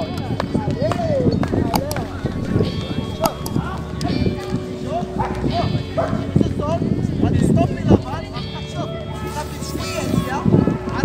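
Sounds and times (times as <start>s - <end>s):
people calling and shouting: 0.9s - 7.4s.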